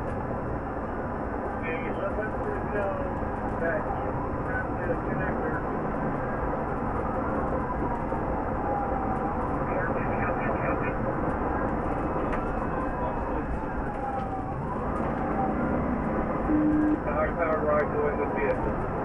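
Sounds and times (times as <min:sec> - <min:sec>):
road and engine noise: 0:00.0 - 0:19.0
police siren wailing: 0:03.7 - 0:11.1, 0:11.8 - 0:18.6.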